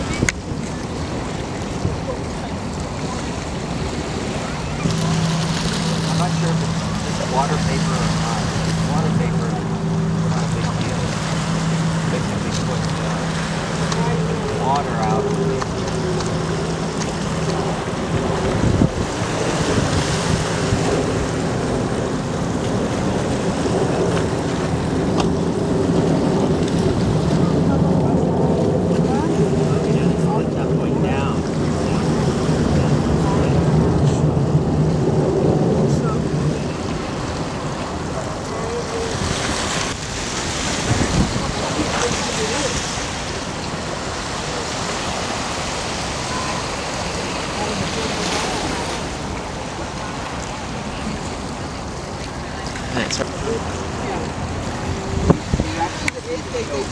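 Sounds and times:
distant jet roar: 0.0s - 56.9s
wind buffeting microphone: 0.0s - 56.9s.

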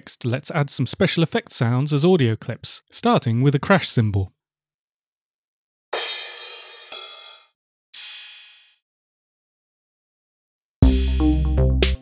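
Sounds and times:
drum machine crash cymbals: 6.0s - 8.8s, 10.8s - 12.0s.

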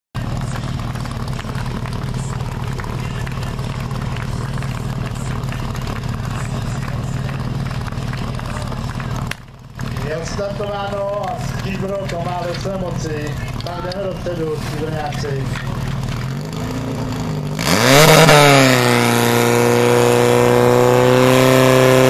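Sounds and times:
fire pump engine humming: 0.2s - 22.0s.

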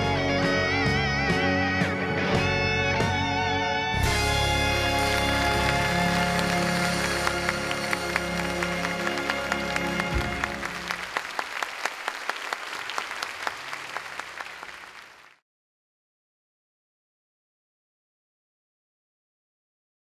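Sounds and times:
audience applause: 4.1s - 15.4s.

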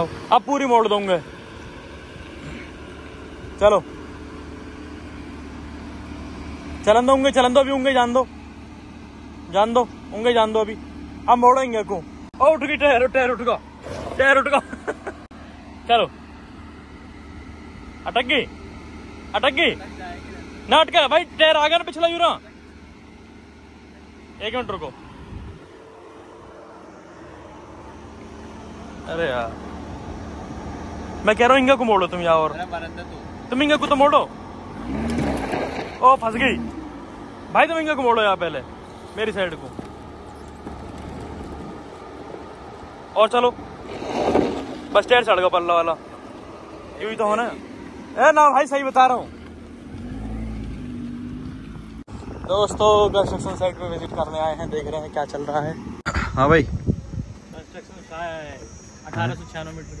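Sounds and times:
car engine running at low revs: 0.0s - 60.0s.

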